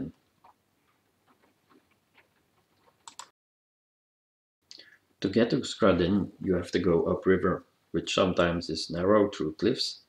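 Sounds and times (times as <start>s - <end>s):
faint ticks and clicks: 0.3s - 3.3s.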